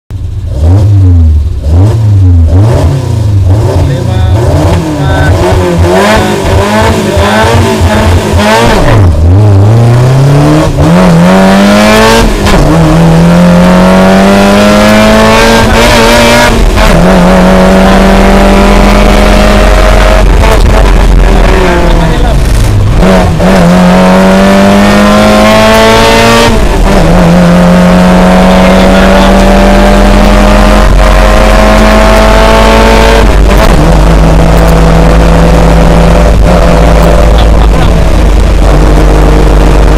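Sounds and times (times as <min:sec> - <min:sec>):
car engine revving and accelerating: 0:00.2 - 0:39.9.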